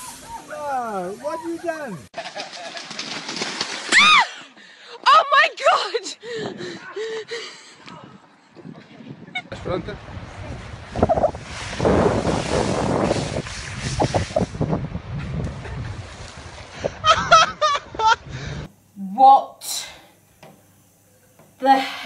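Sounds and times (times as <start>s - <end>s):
high warbling laughter: 17.0s - 18.3s.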